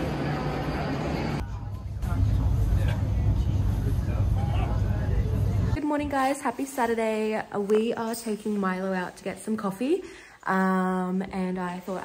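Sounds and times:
crowd babble on platform: 0:00.0 - 0:05.8
faint passenger voices: 0:00.0 - 0:05.8.

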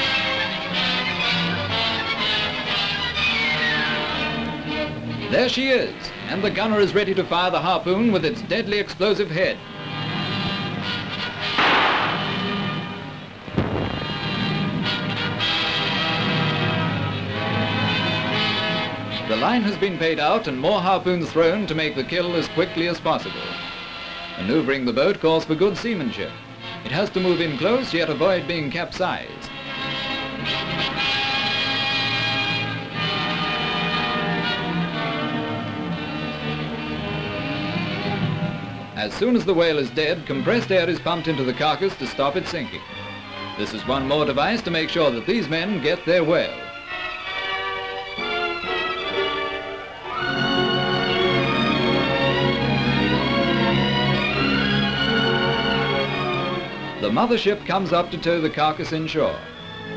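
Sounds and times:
film score with held notes: 0:00.0 - 0:59.9
orchestral music: 0:10.2 - 0:24.3, 0:29.7 - 0:58.5
sharp hit: 0:11.6 - 0:15.4
harpoon gun firing blast: 0:11.6 - 0:15.5.

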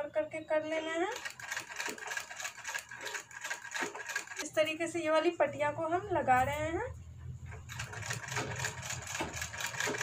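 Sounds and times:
sewing machine stitching: 0:01.1 - 0:04.5, 0:07.5 - 0:10.0.

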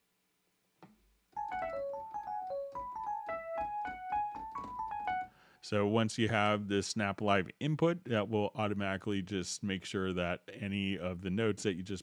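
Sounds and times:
electric piano run of notes: 0:01.4 - 0:05.3.

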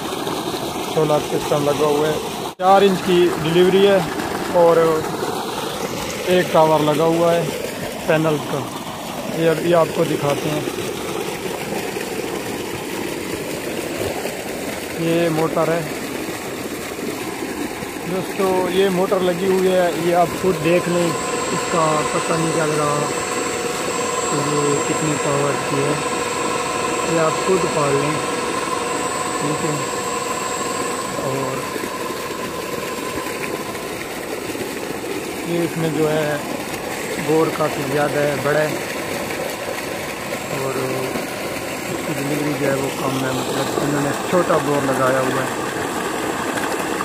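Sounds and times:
electric motor and pump running: 0:00.0 - 0:47.0.

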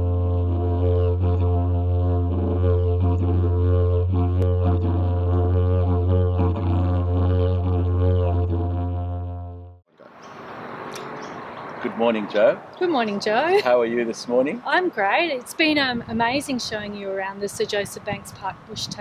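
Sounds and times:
didgeridoo drone: 0:00.0 - 0:11.8
outdoor background noise: 0:09.9 - 0:19.0.

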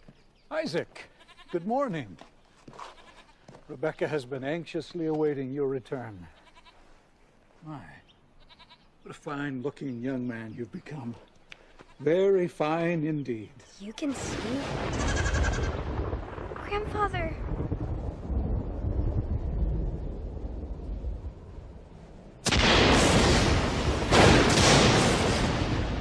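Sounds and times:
goat bleating: 0:01.1 - 0:01.7, 0:02.7 - 0:03.4, 0:06.3 - 0:06.9, 0:08.4 - 0:08.9, 0:15.0 - 0:15.7
rolling thunder: 0:14.3 - 0:26.0.

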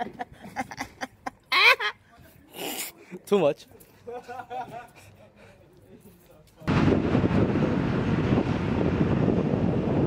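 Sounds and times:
wind blowing across microphone: 0:06.6 - 0:10.0.

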